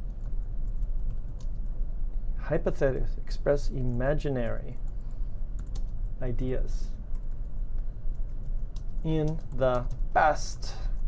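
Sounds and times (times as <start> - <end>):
low electrical hum: 0.0 - 11.0
computer keyboard clicks: 5.6 - 6.0, 8.1 - 10.0.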